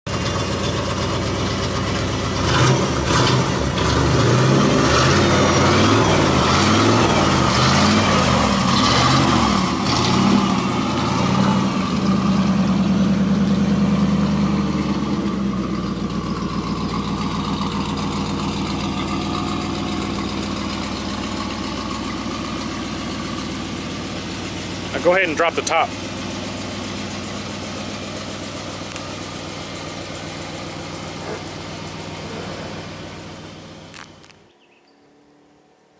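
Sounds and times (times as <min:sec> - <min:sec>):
car engine revving and idling: 0:00.1 - 0:35.9.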